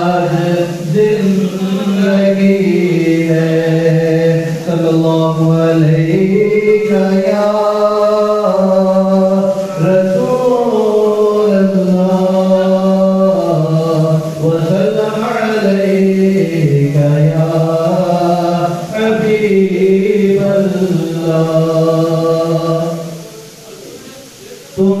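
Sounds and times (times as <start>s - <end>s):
man singing unaccompanied: 0.0s - 23.6s, 24.2s - 25.0s.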